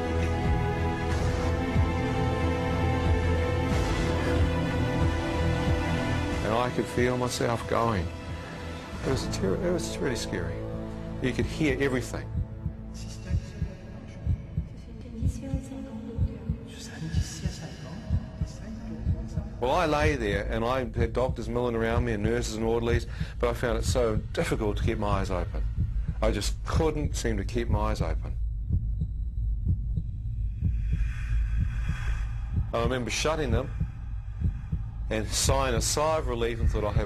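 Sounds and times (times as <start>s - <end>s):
heartbeat thuds: 0.0s - 2.4s, 3.0s - 7.4s, 10.7s - 37.0s
steady low drone: 0.0s - 37.0s.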